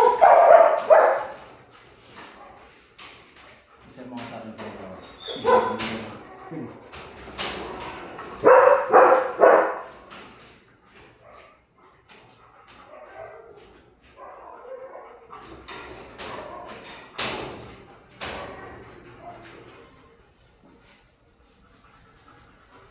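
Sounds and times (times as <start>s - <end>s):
dog yelping and barking: 0.0s - 1.4s, 5.2s - 5.8s, 8.4s - 9.9s, 14.2s - 15.3s.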